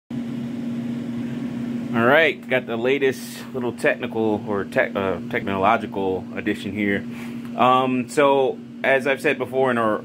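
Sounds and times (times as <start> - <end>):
cooling fan humming: 0.1 - 10.0.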